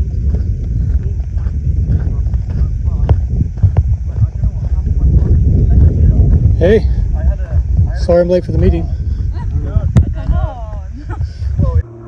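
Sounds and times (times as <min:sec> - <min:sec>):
footsteps on gravel: 0:00.0 - 0:11.8
faint voices talking: 0:00.0 - 0:12.0
wind buffeting microphone: 0:00.0 - 0:12.0.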